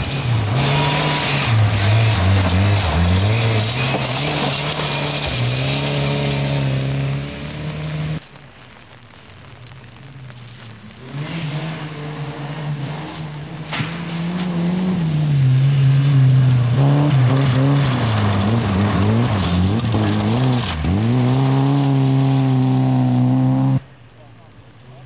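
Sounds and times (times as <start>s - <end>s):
rally car engine at high revs: 0.0s - 8.2s, 10.9s - 23.9s.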